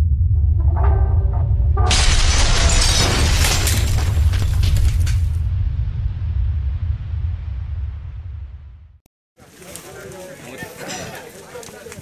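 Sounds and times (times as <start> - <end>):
music: 0.0 - 2.0
deep bass drone: 0.0 - 9.0
glass shattering crash: 1.9 - 5.5.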